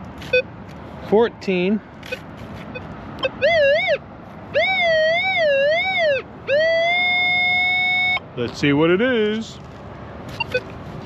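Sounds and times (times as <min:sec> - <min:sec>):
metal detector tone: 0:10.4 - 0:10.7.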